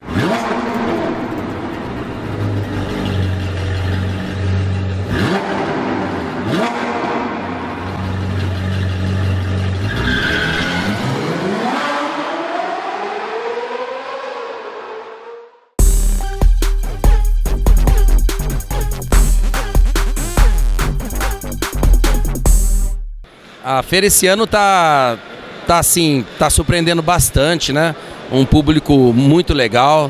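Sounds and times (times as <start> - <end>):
sports car engine revving: 0.0 - 15.6.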